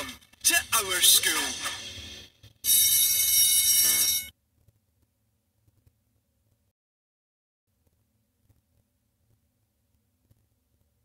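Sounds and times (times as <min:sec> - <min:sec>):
school bell ringing: 0:02.6 - 0:04.3.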